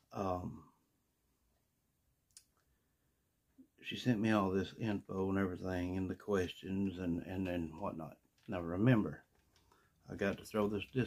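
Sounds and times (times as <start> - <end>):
man's voice: 10.1 - 11.0.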